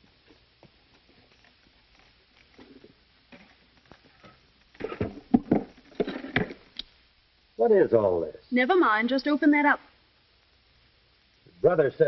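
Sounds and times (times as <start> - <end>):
sharp knocks and scrapes: 1.3 - 6.7.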